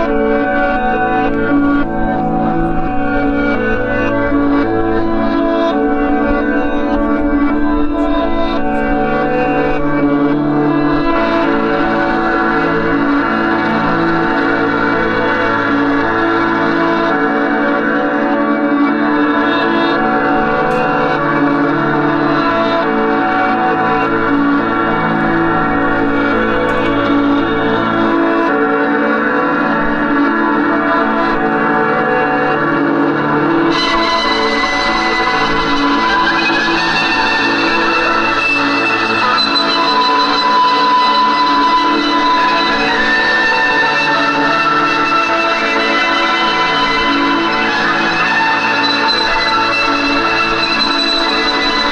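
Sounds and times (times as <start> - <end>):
electric guitar drone: 0.0 - 51.9
high guitar tones: 0.0 - 51.9.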